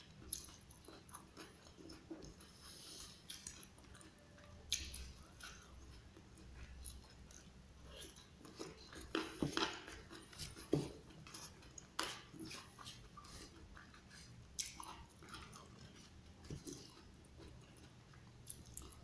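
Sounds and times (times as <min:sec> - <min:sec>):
person chewing: 0:00.0 - 0:19.0.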